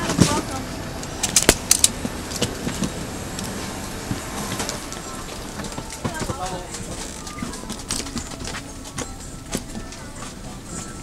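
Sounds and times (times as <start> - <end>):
airliner cabin hum: 0.0 - 11.0.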